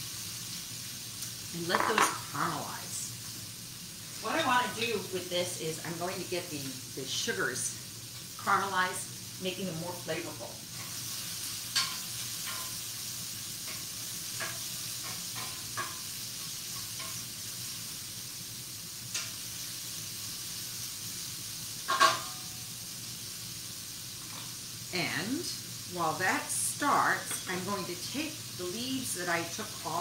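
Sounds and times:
vegetables sizzling in a frying pan: 0.0s - 30.0s.

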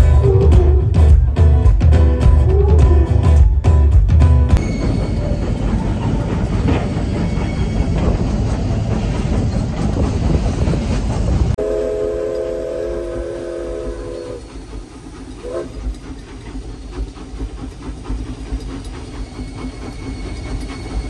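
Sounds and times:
steam locomotive rumbling: 0.0s - 21.0s
steam whistle blast: 11.6s - 14.6s, 15.4s - 15.8s.

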